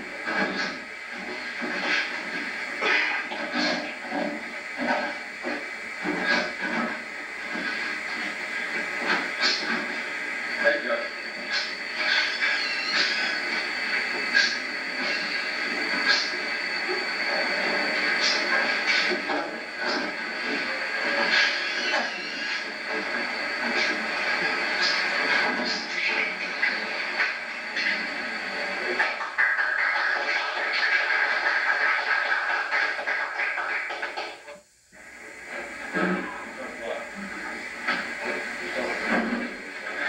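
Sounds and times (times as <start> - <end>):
videotape hiss: 0.0 - 40.0
indistinct voices: 35.8 - 40.0.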